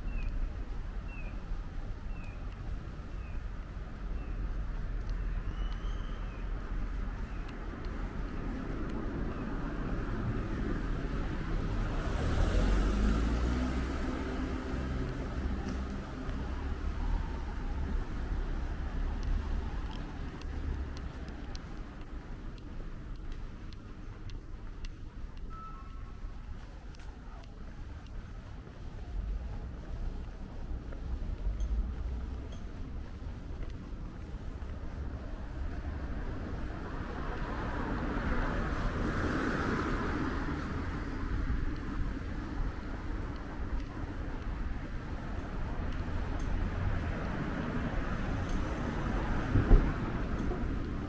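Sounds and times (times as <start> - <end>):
distant traffic hum: 0.0 - 51.0
low city rumble: 0.0 - 51.0
passing vehicle: 5.5 - 23.8, 25.5 - 51.0
faint sharp ticks: 19.1 - 26.1, 47.6 - 48.9.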